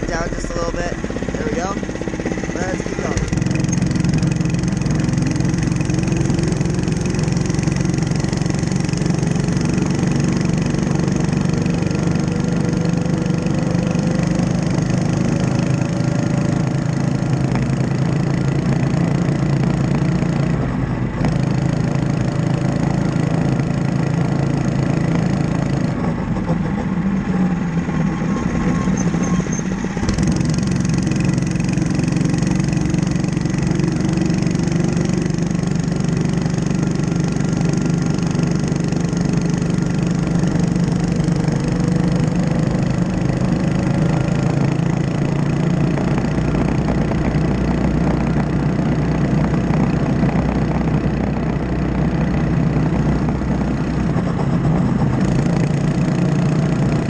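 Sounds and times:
mini bike engine running: 0.0s - 57.0s.

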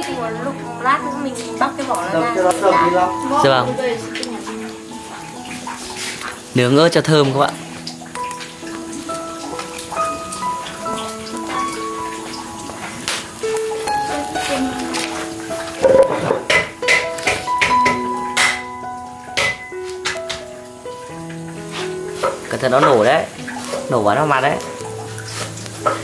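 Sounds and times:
background music with melody: 0.0s - 26.0s
peppers crackling and popping in fire: 0.0s - 26.0s.

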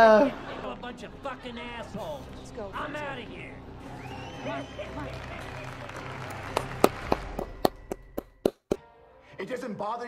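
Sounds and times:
sharp hand claps: 5.1s - 8.8s.

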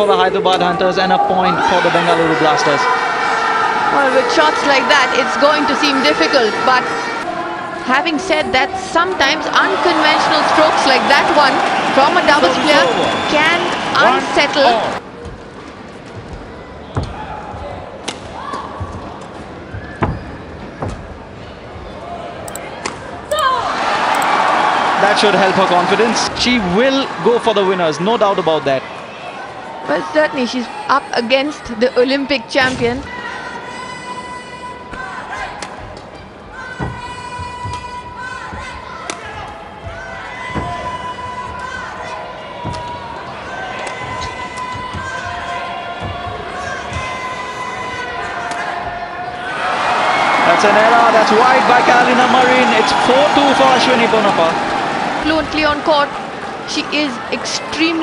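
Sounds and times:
shoe squeaks: 19.6s - 21.0s.

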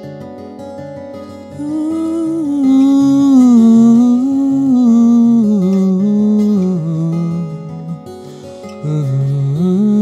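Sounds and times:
fingerpicked acoustic guitar: 0.0s - 10.0s
man humming: 1.6s - 8.1s.

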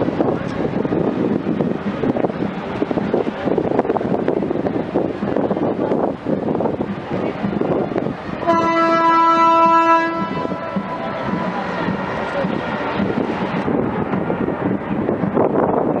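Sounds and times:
crowd noise: 0.0s - 16.0s
wind: 0.0s - 16.0s
ship's horn blast: 8.4s - 13.6s.

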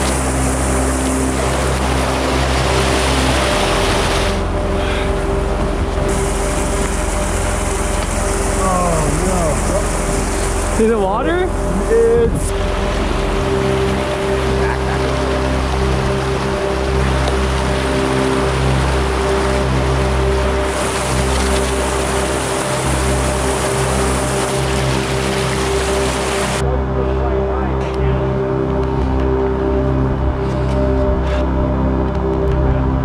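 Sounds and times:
creek rushing: 0.0s - 27.2s
ambient music with held tones: 0.0s - 33.0s.

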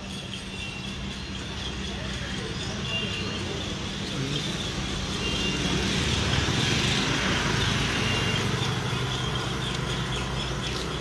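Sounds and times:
steady traffic noise: 0.0s - 11.0s.

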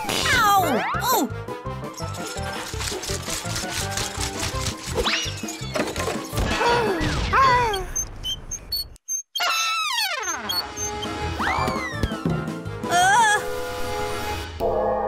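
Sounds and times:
playful cartoon music: 0.0s - 8.0s, 9.1s - 15.0s.

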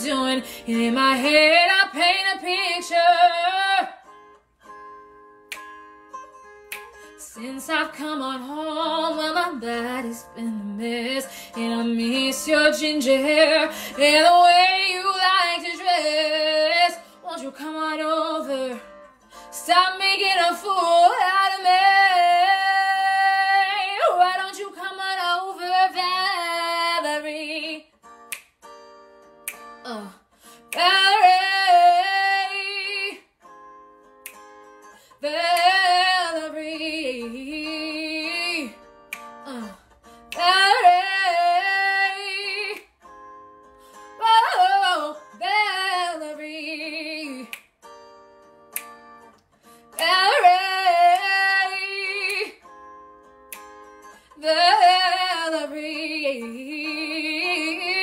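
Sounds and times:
woman singing: 0.0s - 4.1s, 7.1s - 27.9s, 29.8s - 33.3s, 35.1s - 42.9s, 44.1s - 47.6s, 49.8s - 52.6s, 54.3s - 58.0s
instrumental backing: 0.0s - 8.4s.

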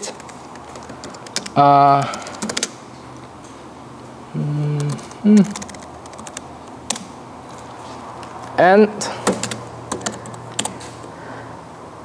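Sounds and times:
keyboard key clicks: 9.2s - 10.8s.

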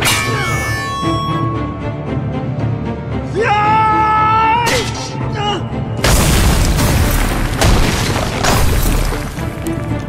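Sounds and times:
crashing hit: 6.0s - 9.7s
ice shattering boom: 6.0s - 10.0s.

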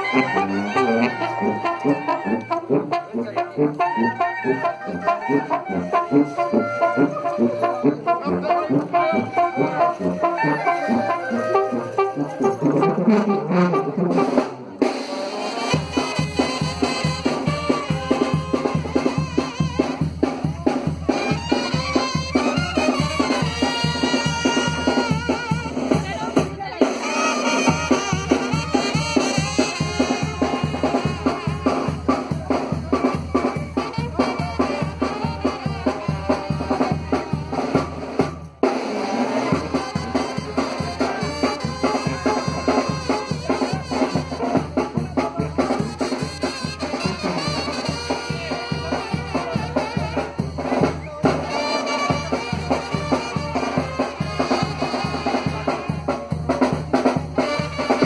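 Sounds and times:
live dance band music: 0.0s - 58.0s
bass drum and snare beat: 15.7s - 58.0s.

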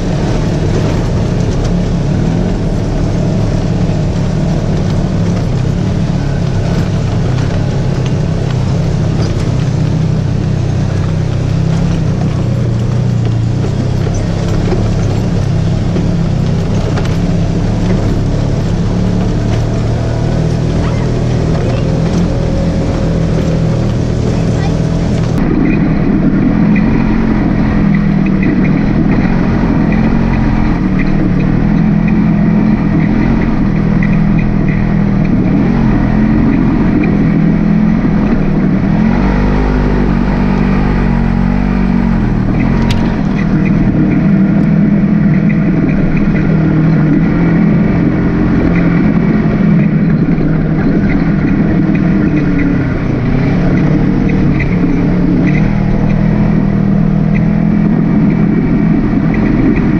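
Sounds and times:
off-road vehicle engine running: 0.0s - 59.9s.

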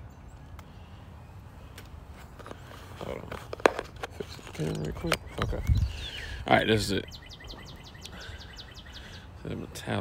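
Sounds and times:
bird chirping rapidly: 4.6s - 9.8s.

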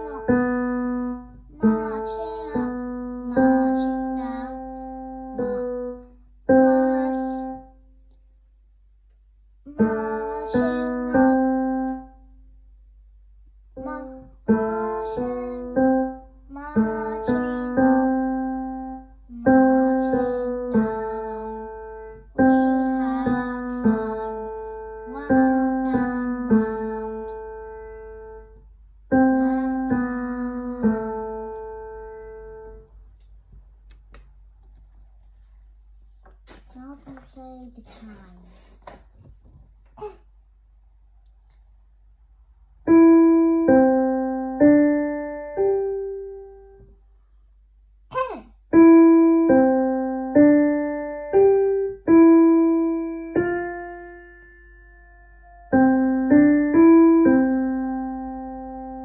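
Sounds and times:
child playing piano melody: 0.0s - 7.7s, 9.7s - 12.3s, 13.8s - 33.0s, 42.8s - 46.9s, 48.7s - 59.0s.

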